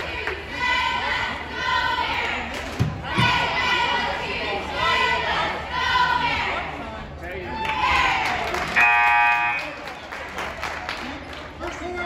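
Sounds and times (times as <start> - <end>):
scoreboard buzzer: 8.8 - 9.8.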